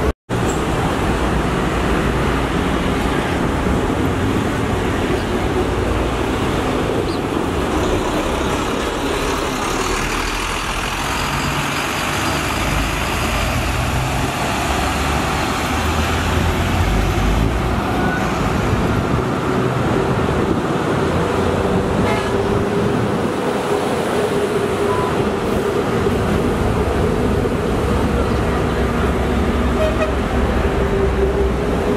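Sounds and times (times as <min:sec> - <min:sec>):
heavy highway traffic: 0:00.0 - 0:31.9.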